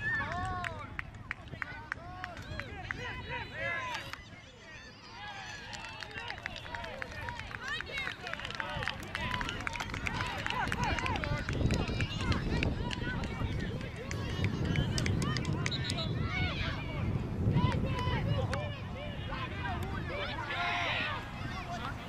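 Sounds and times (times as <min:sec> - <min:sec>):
wind rumble on microphone: 0:06.6 - 0:22.0.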